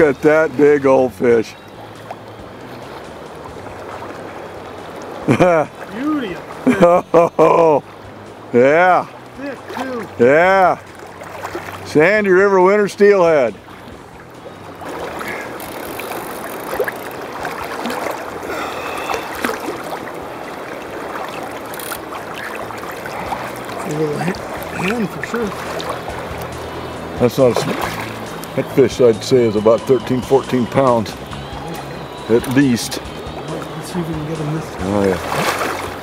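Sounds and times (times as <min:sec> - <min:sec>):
river current rushing: 0:00.0 - 0:36.0
fish thrashing and splashing: 0:10.8 - 0:12.0, 0:13.6 - 0:28.8, 0:31.2 - 0:36.0.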